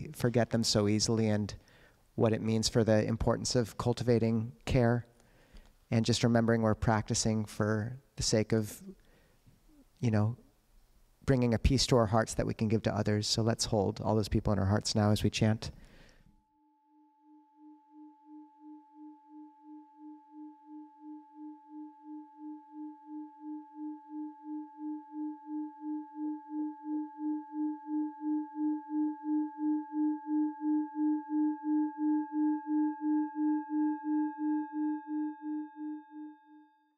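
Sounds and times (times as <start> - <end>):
singing bowl pulsing tone: 16.4 - 36.9.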